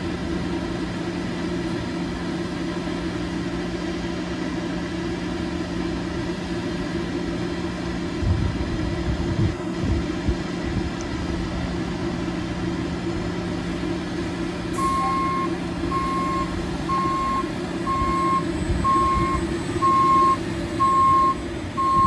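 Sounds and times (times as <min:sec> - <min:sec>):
brief air hiss: 0:14.7 - 0:15.2
reversing alarm beeps: 0:14.8 - 0:22.0.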